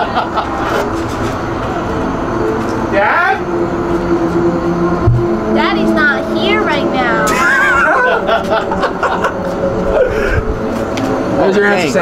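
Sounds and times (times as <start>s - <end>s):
held drone tones: 0.0s - 12.0s
low rumble: 0.8s - 11.4s.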